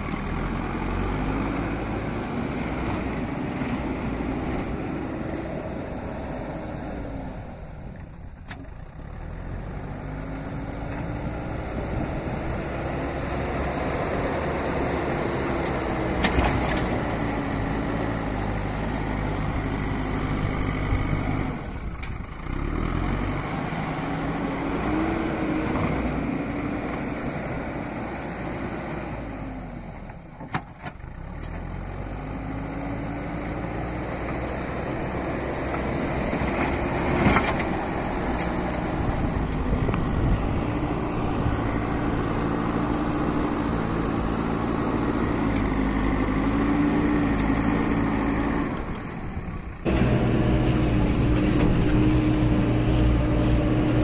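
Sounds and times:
diesel engine under load: 0.0s - 54.0s.

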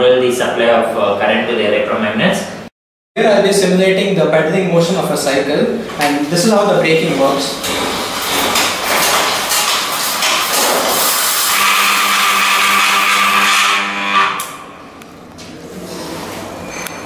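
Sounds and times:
bicycle wheel and chain whirring: 8.2s - 14.6s.

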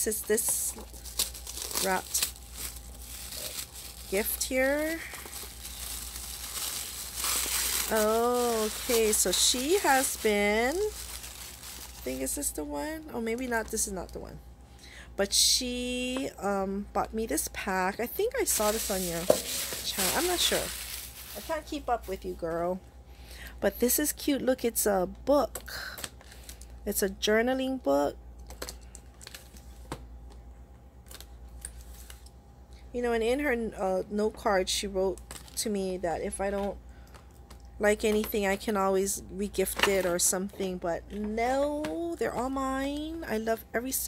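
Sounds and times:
gift wrapping crinkling: 0.1s - 12.6s, 18.2s - 22.2s.

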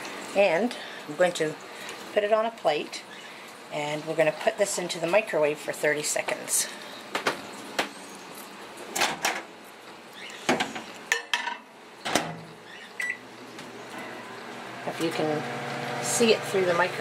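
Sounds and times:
microwave door opening and shutting: 12.0s - 12.4s
microwave oven humming: 12.0s - 17.0s.

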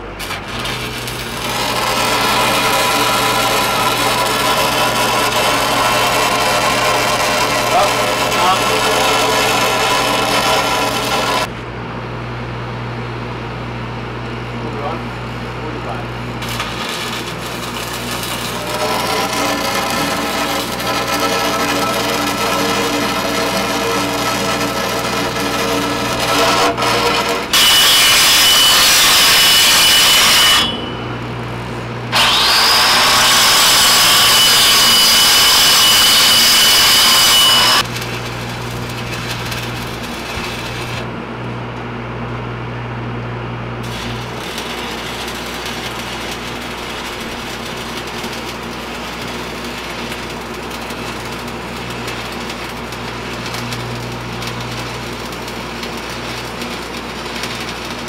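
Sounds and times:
welding arc crackle and buzz: 0.0s - 11.7s, 14.6s - 42.4s, 43.8s - 58.0s
angle grinder whining: 0.2s - 11.5s, 15.8s - 31.5s, 32.1s - 41.1s, 43.8s - 58.0s.

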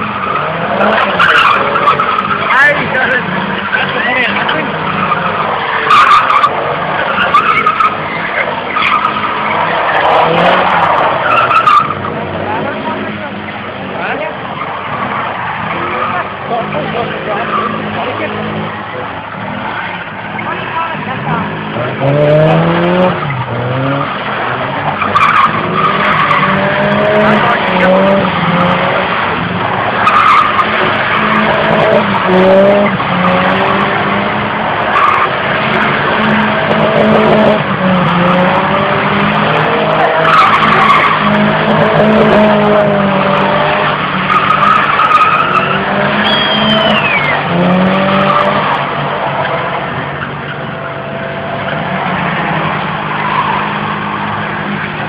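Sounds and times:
car engines revving: 0.0s - 55.0s
tyres squealing: 0.0s - 55.0s.

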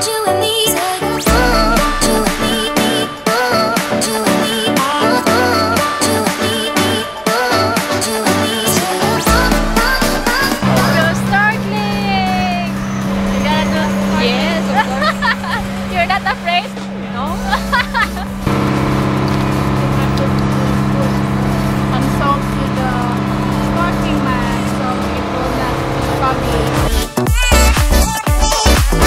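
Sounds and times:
background music: 0.0s - 29.0s
indistinct voices: 0.0s - 29.0s
boat engine droning: 0.8s - 27.2s.

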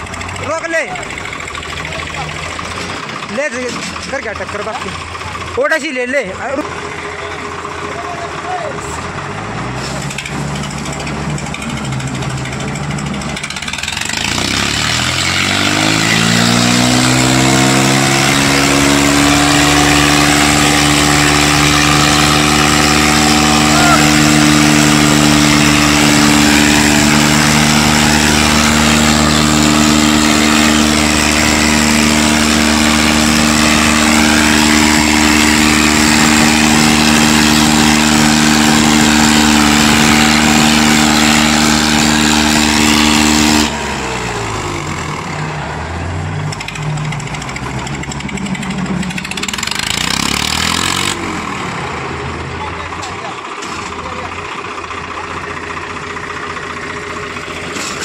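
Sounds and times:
tractor diesel engine running: 0.0s - 58.0s
voices: 0.4s - 9.1s, 23.7s - 24.2s, 52.4s - 55.6s.

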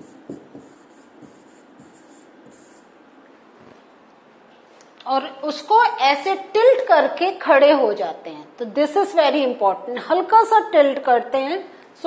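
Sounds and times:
pen tapping and scratching on whiteboard: 0.0s - 2.8s.

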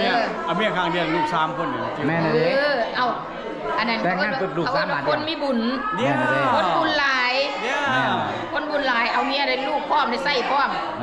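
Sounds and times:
background chatter: 0.0s - 11.0s
people talking up close: 0.0s - 11.0s.

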